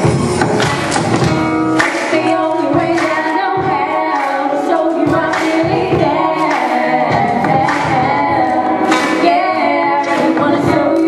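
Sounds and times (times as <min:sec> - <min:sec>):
backing music with low beat: 0:00.0 - 0:11.0
woman singing into microphone: 0:01.9 - 0:11.0.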